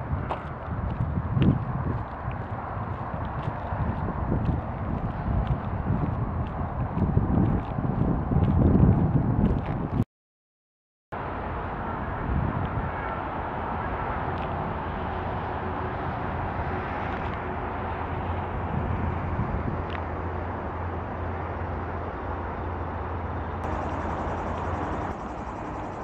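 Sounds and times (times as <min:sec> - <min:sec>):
road traffic hiss and rumble: 0:00.0 - 0:10.0, 0:11.2 - 0:26.0.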